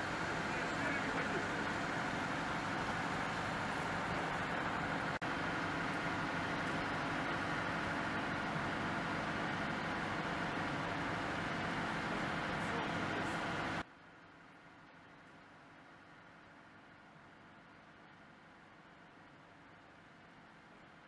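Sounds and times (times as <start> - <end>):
truck engine idling: 0.0 - 21.0.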